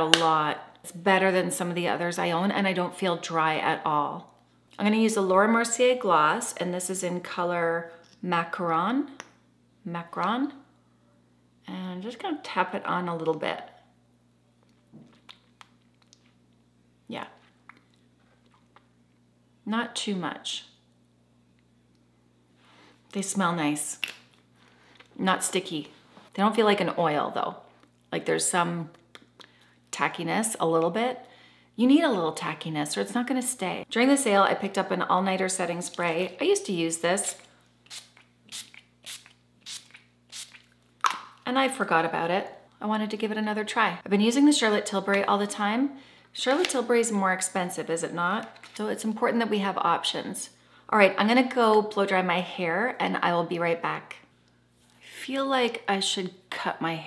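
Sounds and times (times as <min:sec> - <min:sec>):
low steady hum: 0:00.0 - 0:57.0.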